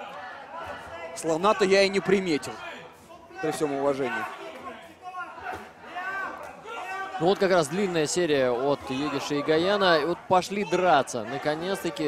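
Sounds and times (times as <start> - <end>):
men talking: 0.0 - 12.0
murmur of large indoor hall: 0.0 - 12.0.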